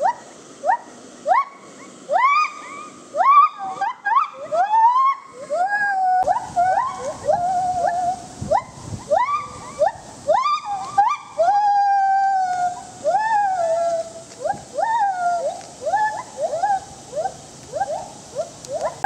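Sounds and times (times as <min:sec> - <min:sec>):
gibbon whooping calls: 0:00.0 - 0:19.0.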